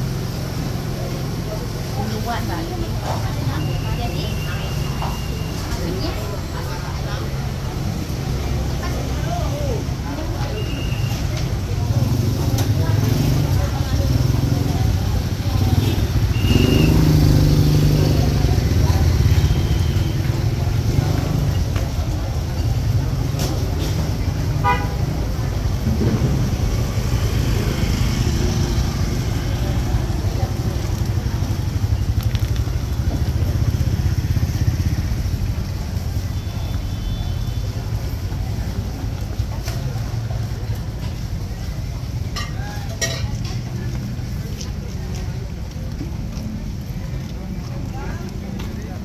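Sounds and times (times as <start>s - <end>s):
motorcycles and traffic rumble: 0.0s - 49.0s
people talking: 0.0s - 49.0s.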